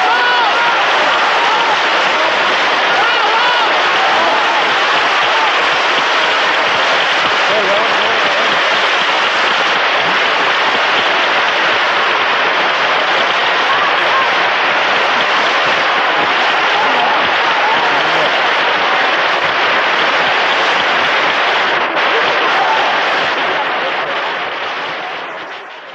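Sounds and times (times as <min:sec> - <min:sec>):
voices calling out: 0:00.0 - 0:25.8
audience applauding: 0:00.0 - 0:25.9.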